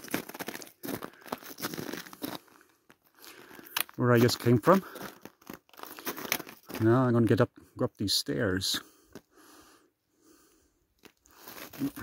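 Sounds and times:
footsteps crunching on snow: 0:00.0 - 0:07.0, 0:11.3 - 0:12.0
man speaking: 0:04.0 - 0:05.0, 0:06.8 - 0:08.9, 0:11.8 - 0:12.0.

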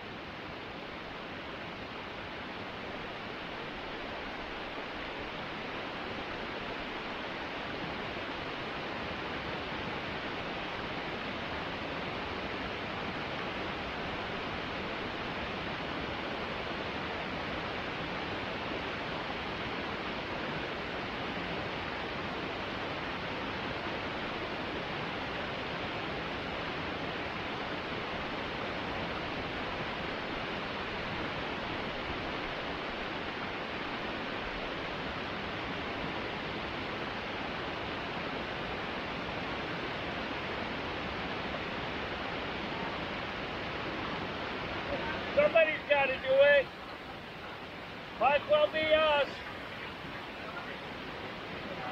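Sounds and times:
water rushing over rocks: 0:00.0 - 0:51.9.

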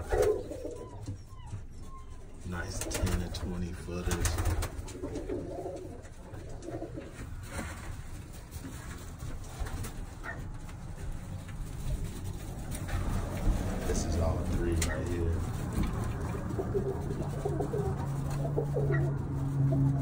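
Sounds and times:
pigeons cooing: 0:00.0 - 0:08.4, 0:11.9 - 0:20.0.

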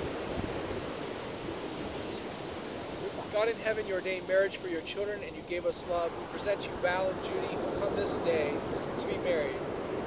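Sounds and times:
wind buffeting microphone: 0:00.0 - 0:03.4
surf: 0:00.0 - 0:10.0.

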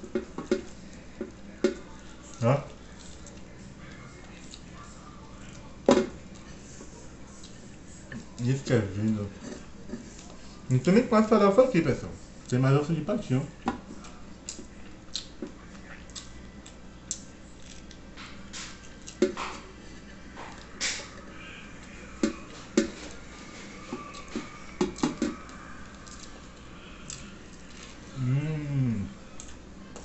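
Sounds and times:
chewing with wet smacks: 0:00.4 - 0:09.2, 0:13.9 - 0:19.6, 0:29.3 - 0:30.0.

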